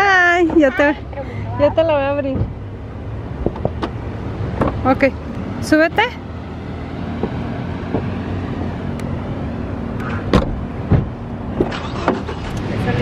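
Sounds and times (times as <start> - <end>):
car engine idling: 0.0 - 13.0
knocks and thumps of people: 10.3 - 11.7.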